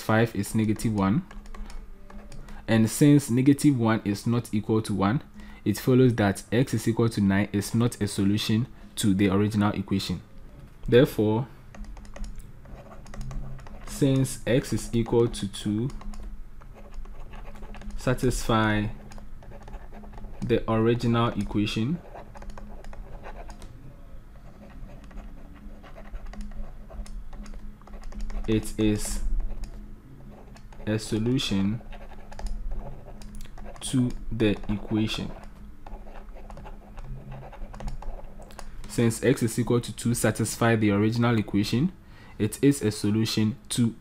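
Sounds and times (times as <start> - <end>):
faint low hum: 0.0 - 44.0
stylus tapping on tablet: 11.7 - 13.9.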